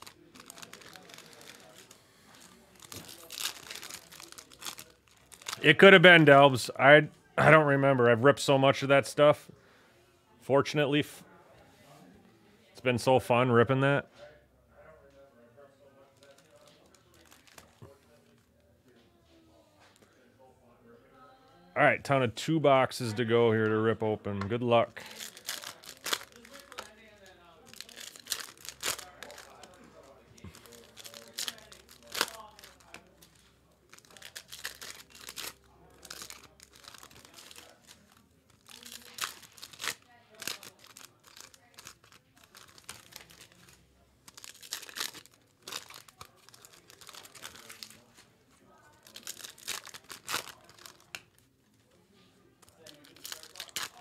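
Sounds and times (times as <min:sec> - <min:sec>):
card wrappers tearing and crinkling: 0:00.0 - 0:06.0, 0:16.2 - 0:18.4, 0:24.9 - 0:48.2, 0:48.9 - 0:51.5, 0:52.6 - 0:54.0.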